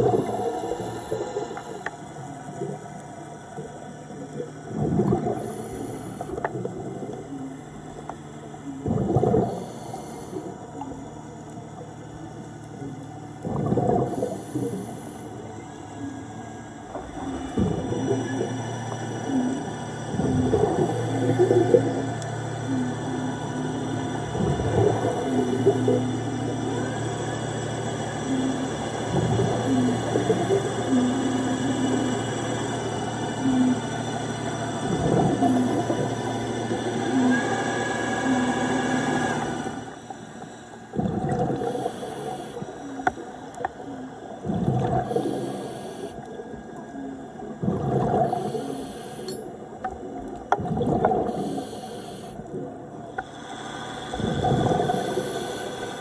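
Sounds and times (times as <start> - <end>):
regulator bubbles bursting: 0.0 - 1.5, 4.4 - 8.1, 8.8 - 9.9, 12.8 - 15.0, 16.2 - 34.0, 34.7 - 39.8, 40.9 - 45.6, 46.6 - 48.7, 49.9 - 51.7, 54.1 - 55.8
submarine thrusters humming: 0.0 - 56.0.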